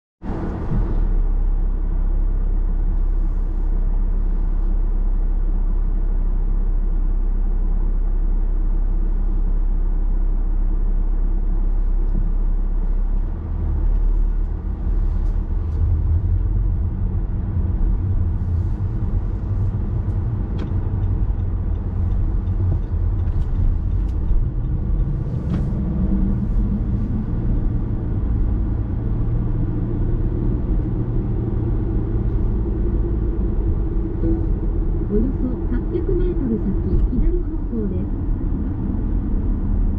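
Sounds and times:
car engine and tyre noise: 0.2 - 39.9.

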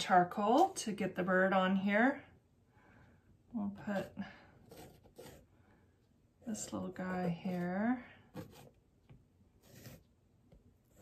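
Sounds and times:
charcoal scratching on canvas: 4.0 - 5.5, 6.6 - 8.8, 9.6 - 10.0.

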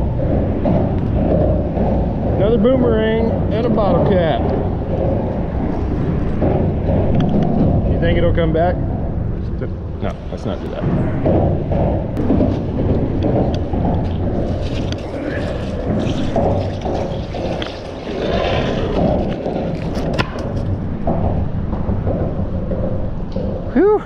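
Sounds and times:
wind buffeting microphone: 0.0 - 24.0
metal bar scraping on concrete: 14.3 - 20.7.

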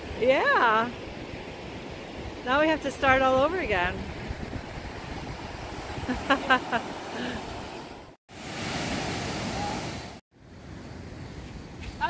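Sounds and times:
ocean surf washing on beach: 0.0 - 10.2.

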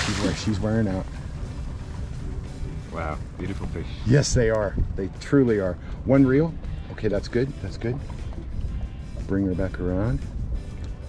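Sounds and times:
background music with bass line: 0.0 - 11.0.

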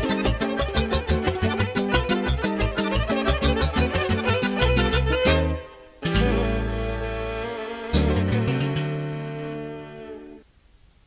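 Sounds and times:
band's held chord: 0.0 - 10.4
faint tape hiss: 0.0 - 11.0.

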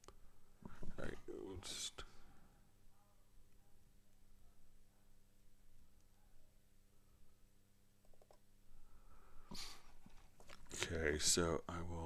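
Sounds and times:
man speaking: 1.0 - 2.2, 10.7 - 12.0
man breathing: 8.8 - 10.0.

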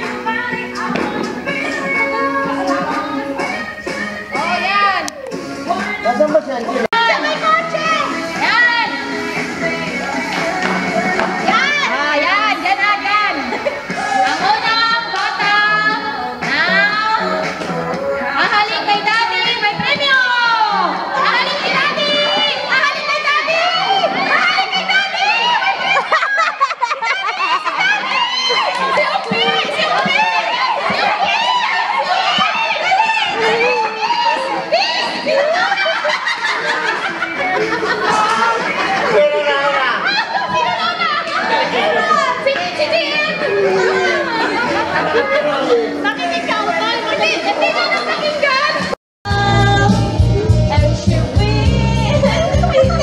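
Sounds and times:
children shouting and squealing: 6.9 - 17.4, 18.8 - 53.0.

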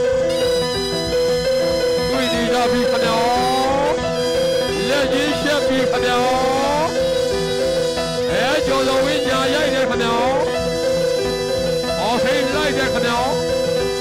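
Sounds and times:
shrill reed pipe melody: 0.0 - 14.0
steady held drone tone: 0.0 - 14.0.

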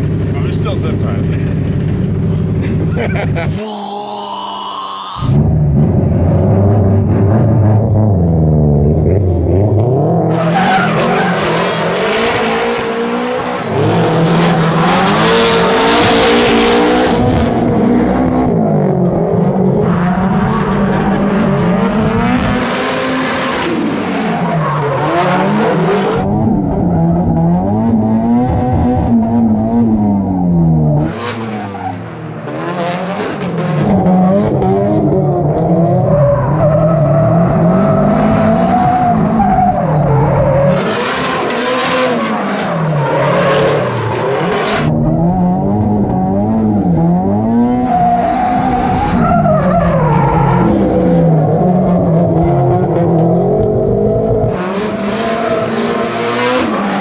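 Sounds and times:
car engines revving: 0.0 - 57.0
tires squealing and skidding: 10.3 - 13.8, 22.7 - 26.2, 31.1 - 34.6, 36.0 - 44.9, 47.7 - 51.2, 54.6 - 57.0.

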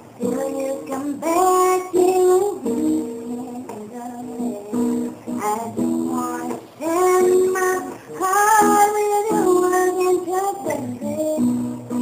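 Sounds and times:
woman singing slow melody: 0.2 - 12.0.

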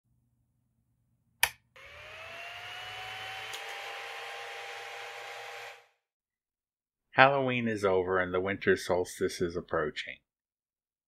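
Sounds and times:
sharp click: 1.4 - 1.6
motor whir spinning up: 1.8 - 6.0.

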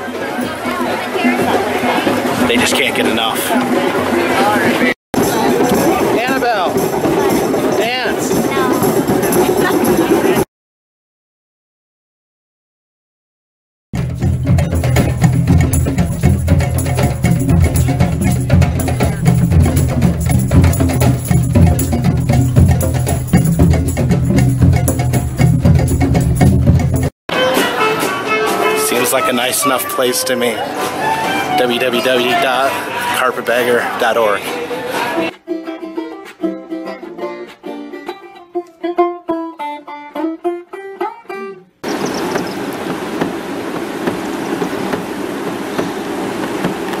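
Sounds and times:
rushing outdoor noise: 0.0 - 10.4, 41.8 - 47.0
hand drums playing fast rhythm: 0.8 - 10.4, 14.0 - 28.9
plucked string notes: 14.0 - 32.7, 35.0 - 43.4.

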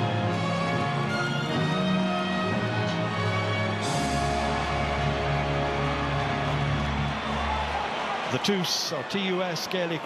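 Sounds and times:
music of long held chords: 0.0 - 7.4.

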